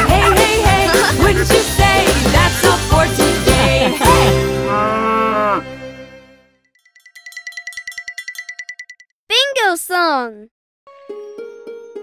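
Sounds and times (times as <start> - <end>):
cow mooing: 4.6 - 5.8.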